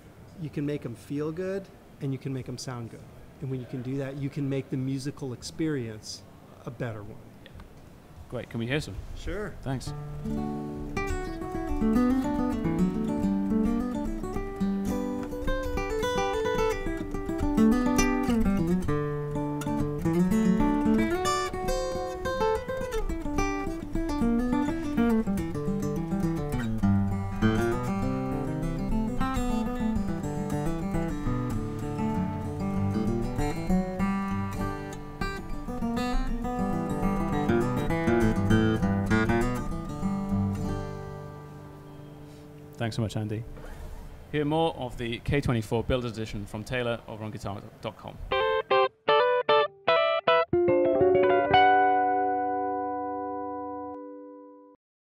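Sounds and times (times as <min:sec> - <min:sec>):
acoustic guitar playing: 0:09.9 - 0:44.3, 0:48.3 - 0:54.8.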